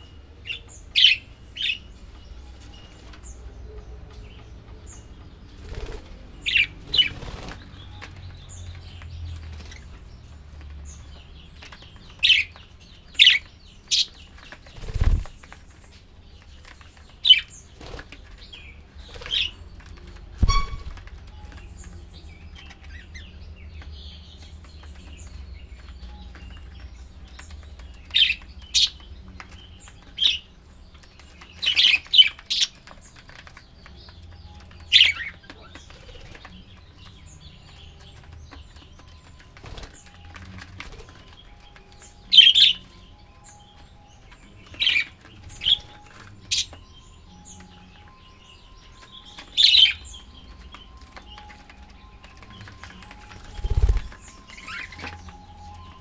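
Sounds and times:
budgerigars chirping: 0.0s - 15.6s, 16.2s - 56.0s.

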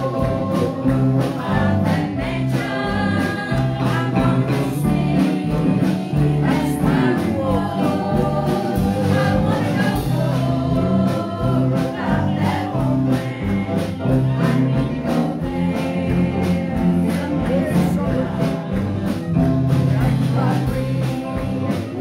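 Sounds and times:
piano: 0.0s - 22.0s
strummed acoustic guitars: 0.0s - 22.0s
women singing gospel: 0.0s - 22.0s.

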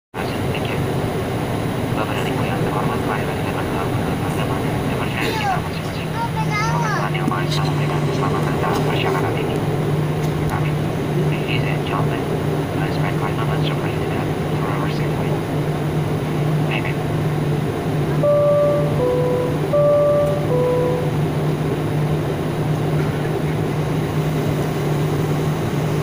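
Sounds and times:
jet engine hum and rumble: 0.2s - 26.0s
people talking in cabin: 0.2s - 26.0s.

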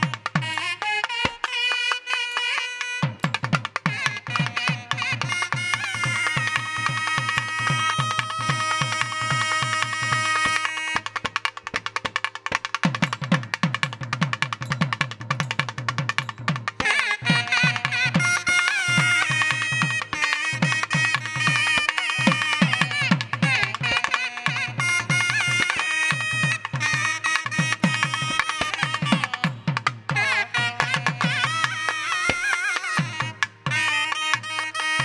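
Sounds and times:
double-reed pipes playing melody: 0.0s - 11.6s, 16.8s - 35.0s.

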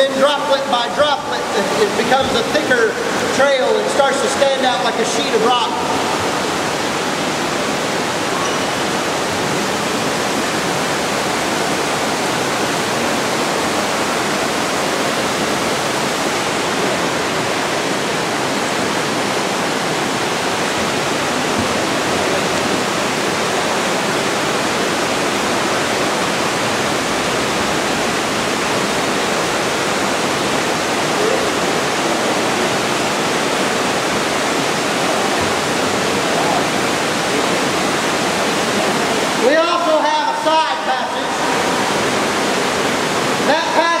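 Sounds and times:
water rushing over a dam: 0.0s - 44.0s.

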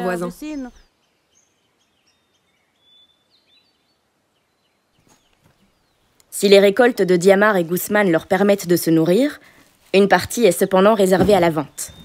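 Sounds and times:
faint bird chirps: 0.0s - 7.9s.

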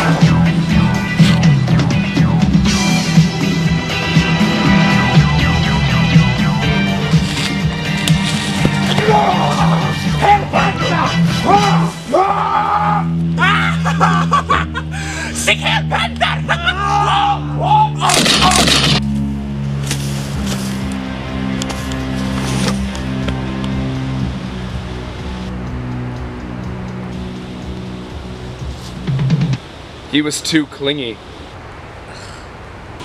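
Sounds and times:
film soundtrack music: 0.0s - 29.6s
shouts and grunts of struggle: 8.9s - 14.3s, 15.3s - 18.6s
loud crash: 18.1s - 19.1s.

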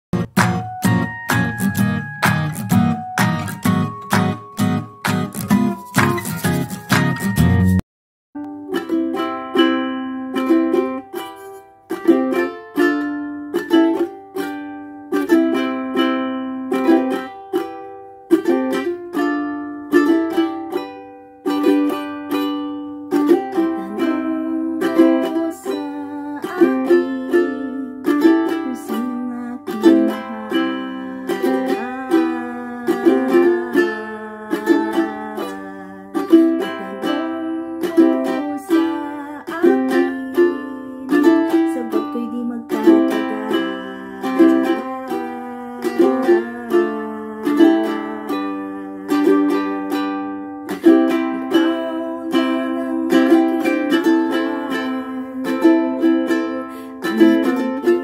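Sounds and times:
ukulele strumming: 0.1s - 7.8s, 8.4s - 58.0s.

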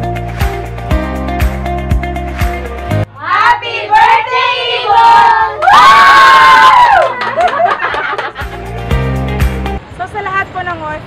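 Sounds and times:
children and adults shouting and cheering: 3.2s - 7.4s.

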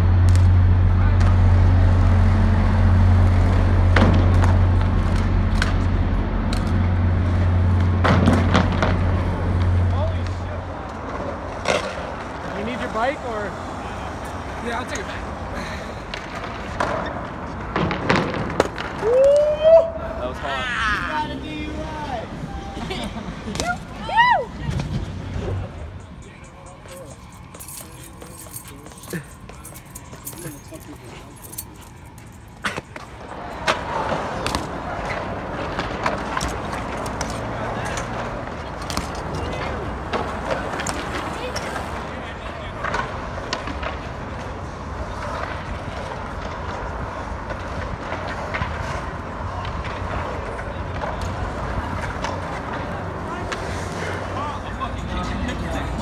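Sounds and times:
bmx bikes on concrete: 0.0s - 56.0s.

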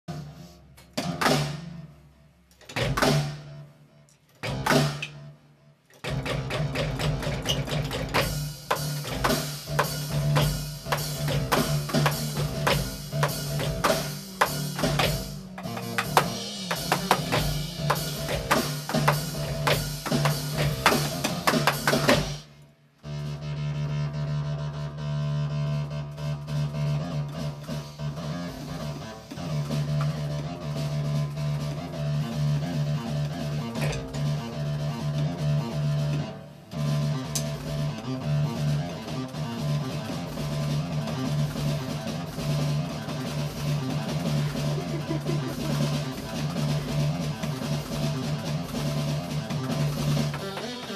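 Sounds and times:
electronic drum hits: 4.4s - 5.3s, 6.0s - 22.5s.

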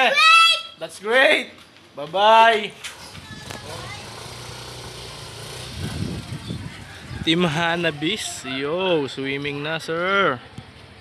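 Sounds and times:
motor scooter engine running: 3.0s - 7.9s.

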